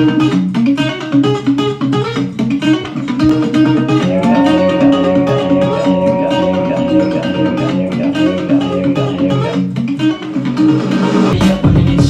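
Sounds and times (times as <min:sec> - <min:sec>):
guitar playing: 0:00.8 - 0:10.7.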